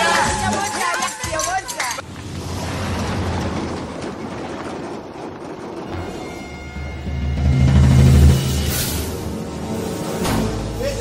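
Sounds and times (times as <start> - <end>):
heavy lorry passing: 2.0 - 11.0.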